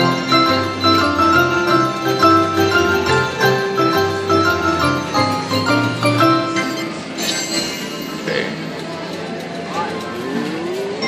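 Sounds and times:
casino machine sounds: 0.0 - 11.0.

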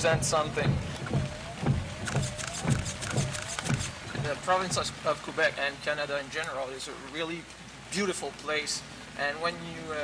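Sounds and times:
windshield wipers thumping: 0.0 - 5.6
heavy rain: 0.0 - 10.0.

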